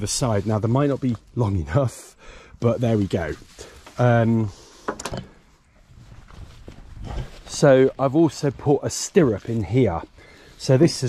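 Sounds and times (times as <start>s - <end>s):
footsteps on grass: 2.6s - 4.8s, 5.4s - 11.0s.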